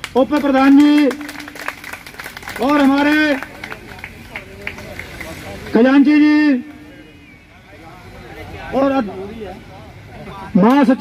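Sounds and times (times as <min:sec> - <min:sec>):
man announcing: 0:00.1 - 0:01.6, 0:02.6 - 0:03.8, 0:05.6 - 0:07.0, 0:10.4 - 0:11.0.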